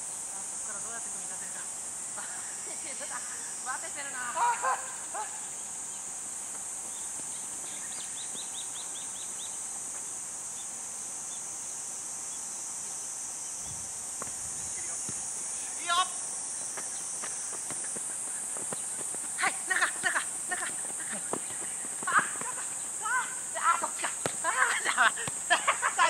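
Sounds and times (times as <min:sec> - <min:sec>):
insects droning: 0:00.0 - 0:26.0.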